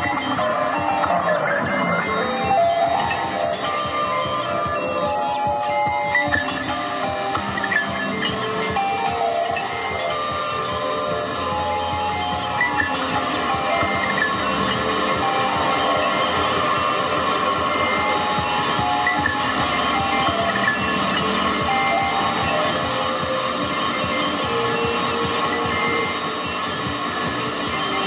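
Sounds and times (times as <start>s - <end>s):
electronic noise music: 0.0s - 28.0s.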